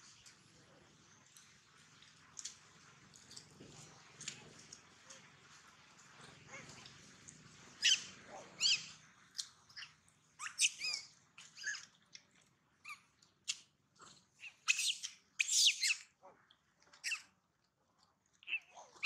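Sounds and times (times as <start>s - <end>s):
baby monkey squeaking: 7.8s - 11.9s, 14.4s - 16.0s.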